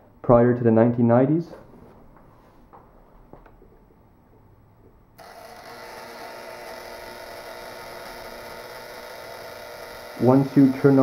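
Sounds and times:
electrotherapy machine buzzing: 5.2s - 11.0s.

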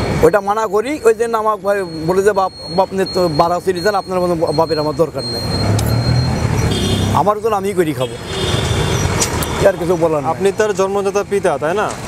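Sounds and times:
road noise: 0.0s - 12.0s
vehicle engine passing: 5.1s - 10.6s.

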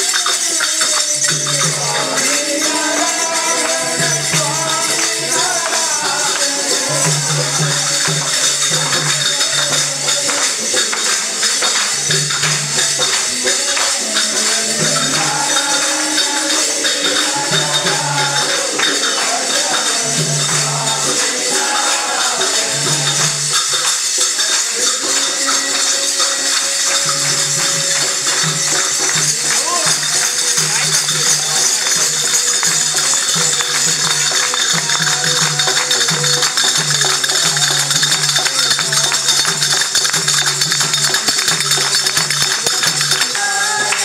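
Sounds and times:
group singing devotional song: 0.0s - 44.0s
hand clapping: 0.0s - 44.0s
jingling hand percussion: 0.0s - 44.0s.

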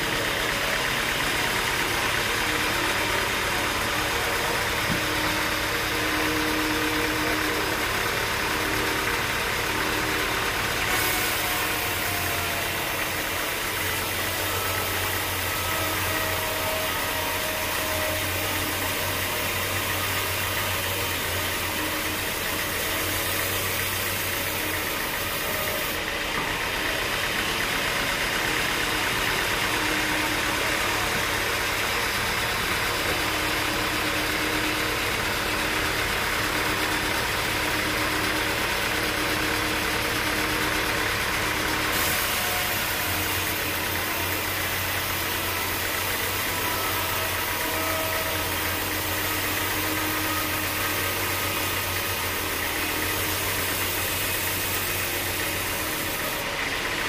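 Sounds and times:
band saw cutting log: 0.0s - 57.0s.

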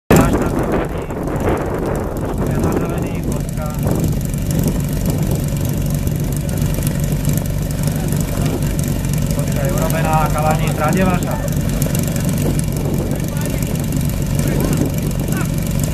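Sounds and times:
pump engine idling: 0.1s - 15.9s.

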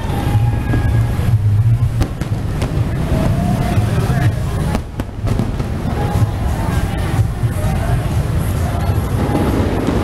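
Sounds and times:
busy street noise: 0.0s - 10.0s
fireworks bangs: 0.0s - 10.0s
people's voices: 0.0s - 10.0s.

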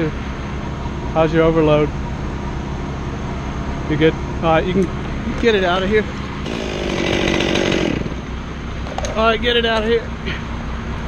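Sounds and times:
chainsaw revving: 6.4s - 8.4s.

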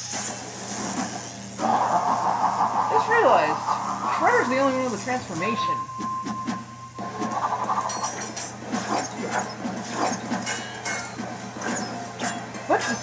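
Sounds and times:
ringing tone: 4.4s - 8.5s
fight scene soundtrack music: 7.0s - 12.5s.

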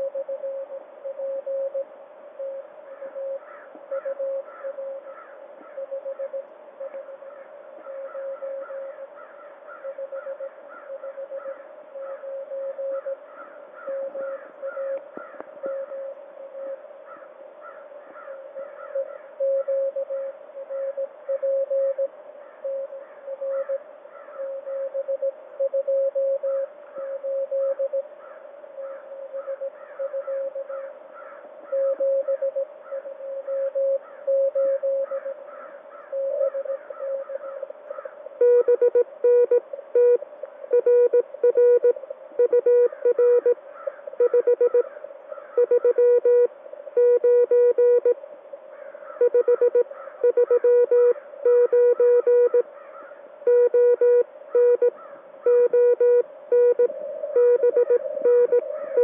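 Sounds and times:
keyed sidetone: 0.0s - 2.6s, 38.4s - 43.6s, 44.2s - 44.9s, 45.6s - 48.2s, 49.2s - 52.6s, 53.5s - 59.0s
morse code tone: 0.0s - 5.0s, 5.7s - 8.9s, 9.8s - 13.2s, 13.8s - 15.1s, 18.9s - 23.8s, 24.4s - 28.1s, 29.1s - 30.7s, 31.7s - 35.3s, 36.1s - 37.3s, 38.4s - 44.9s, 45.6s - 48.2s, 49.2s - 52.7s, 53.4s - 59.0s.

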